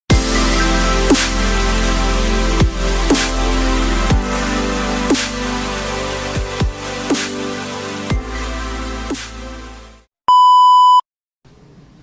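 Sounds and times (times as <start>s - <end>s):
electronic test tone beep: 10.3s - 11.0s.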